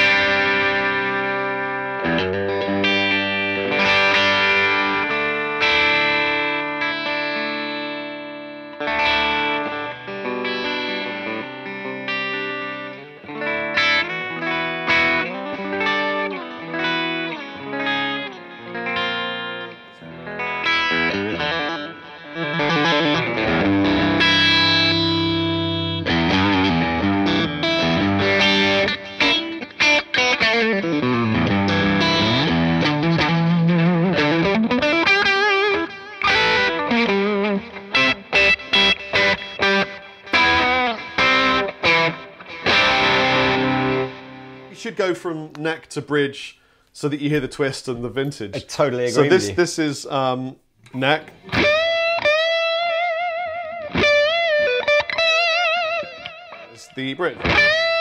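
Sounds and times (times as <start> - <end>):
overdriven electric guitar: 0.0 - 44.7, 50.8 - 58.0.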